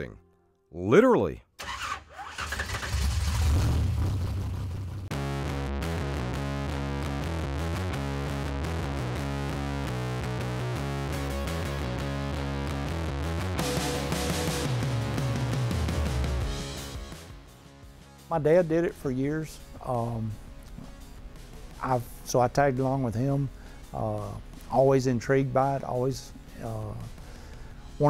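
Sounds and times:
race engine low rumble: 0:02.9 - 0:05.3
rock music with guitar: 0:05.1 - 0:18.3.

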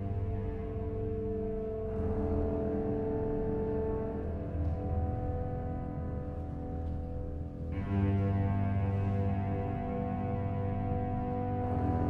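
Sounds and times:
low bowed string drone: 0:07.6 - 0:12.0.

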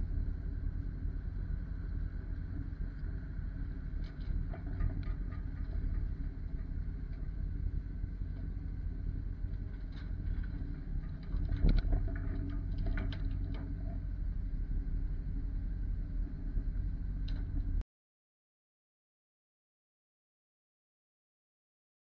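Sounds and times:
heavy equipment engine rumble: 0:00.0 - 0:17.8.

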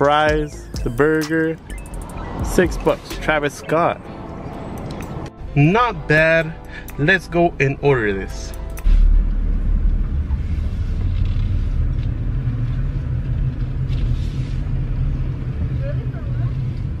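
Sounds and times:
car engine low rumble: 0:00.0 - 0:17.0.

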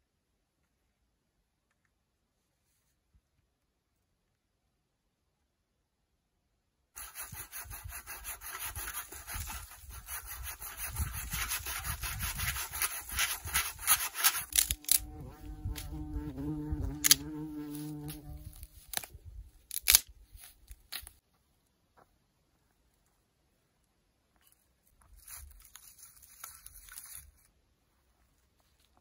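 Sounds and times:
hand saw cutting branch: 0:07.0 - 0:19.1
dry wood snapping: 0:13.2 - 0:15.9, 0:17.0 - 0:17.3, 0:18.8 - 0:21.2.

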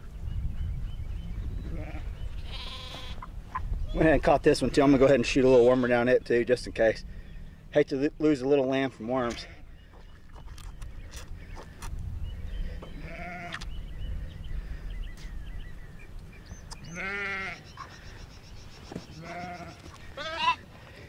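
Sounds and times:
wind rumble on microphone: 0:00.0 - 0:05.5, 0:09.5 - 0:17.1
lamb bleating: 0:01.7 - 0:03.3, 0:13.0 - 0:13.6, 0:16.9 - 0:17.6, 0:19.2 - 0:20.6.

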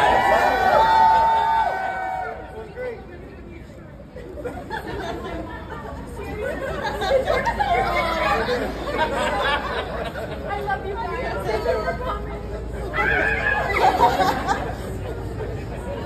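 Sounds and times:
low street hum: 0:00.0 - 0:16.0
people chattering: 0:00.0 - 0:16.0.

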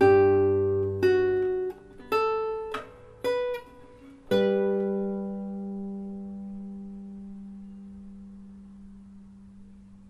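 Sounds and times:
low pure musical tone: 0:00.0 - 0:10.0.

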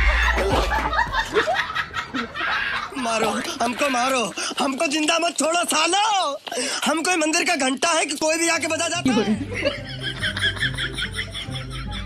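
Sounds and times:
person laughing: 0:00.0 - 0:03.4, 0:09.0 - 0:12.0.

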